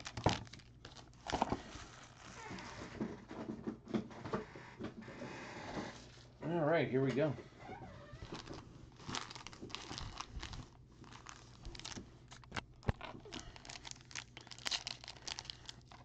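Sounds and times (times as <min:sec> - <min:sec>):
foil wrapper crinkling and tearing: 0:00.0 - 0:02.8, 0:08.2 - 0:16.0.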